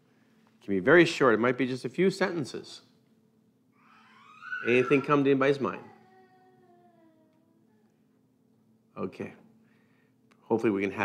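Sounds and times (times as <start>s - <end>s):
low steady hum: 0.0s - 11.0s
faint pitched tone sliding down: 3.8s - 7.3s.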